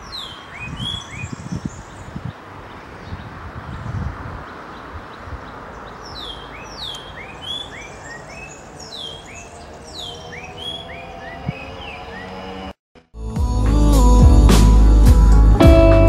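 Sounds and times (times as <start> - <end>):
small birds chirping: 0.0 - 12.8
wind in trees: 0.0 - 12.8.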